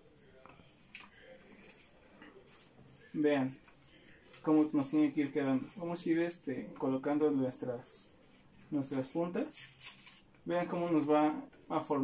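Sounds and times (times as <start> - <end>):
paper rustling: 0.6 - 6.0, 8.1 - 11.2.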